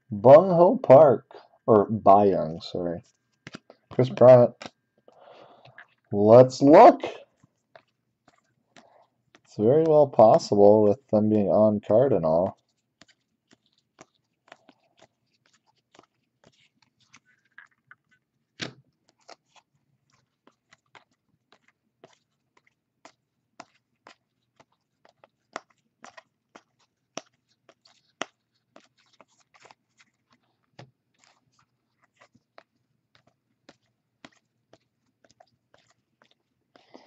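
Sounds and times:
trading cards flipping with clicks: 3.4s - 4.8s.

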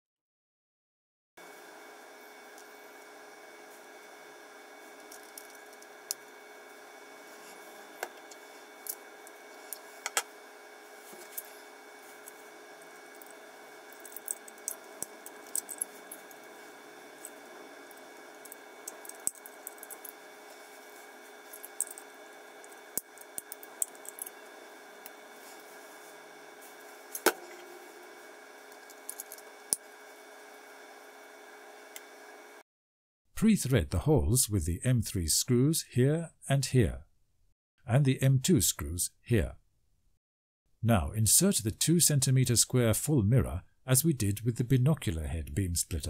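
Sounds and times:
steady background hum: 1.4s - 32.6s.

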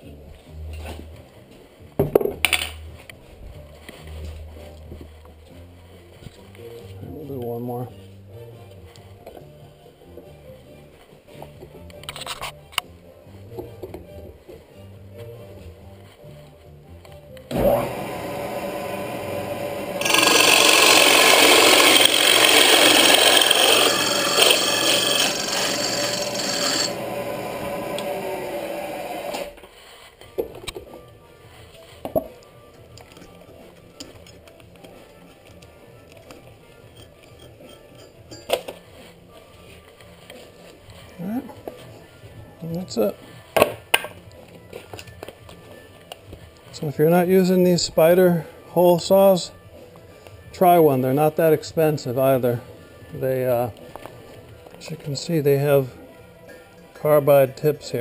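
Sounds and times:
drill press motor: 17.5s - 29.5s
hole saw cutting into wood: 17.5s - 29.5s.

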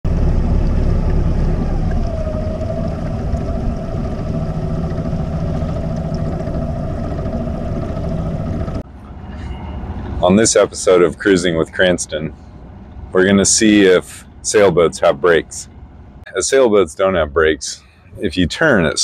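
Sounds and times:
low rumble: 0.0s - 16.6s
water splashing along boat hull: 0.5s - 8.8s.

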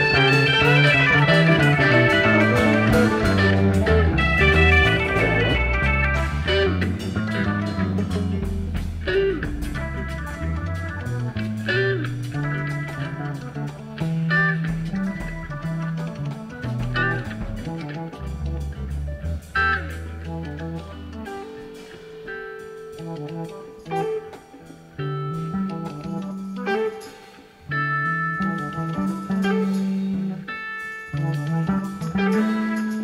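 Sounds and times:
electric guitar lines: 0.0s - 33.0s
psychedelic rock band playing: 0.0s - 33.0s.

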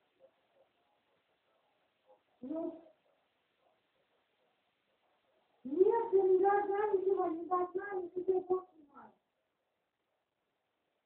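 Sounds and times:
child singing: 5.7s - 8.8s.

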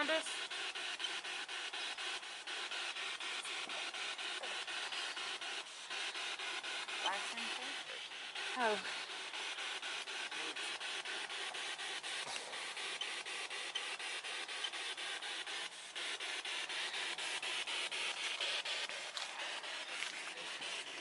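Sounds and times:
radio static in rapid bursts: 0.0s - 21.0s.

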